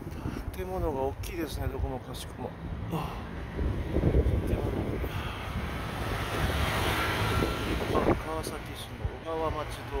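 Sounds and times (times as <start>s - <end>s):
motor vehicle passing: 2.5s - 10.0s
wind on microphone: 3.4s - 9.5s.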